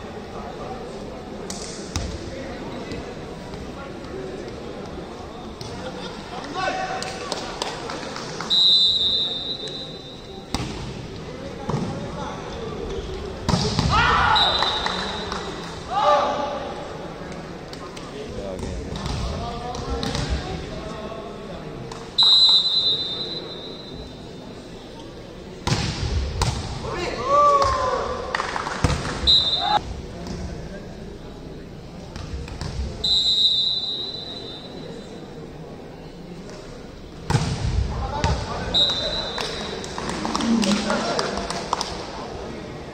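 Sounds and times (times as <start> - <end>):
players' voices in sports hall: 0.0 - 42.9
referee's whistle blasts: 8.5 - 10.3, 14.2 - 15.4, 22.2 - 24.1, 29.2 - 29.8, 33.0 - 35.0, 38.6 - 39.6
volleyball strike: 25.6 - 26.8, 37.3 - 38.6.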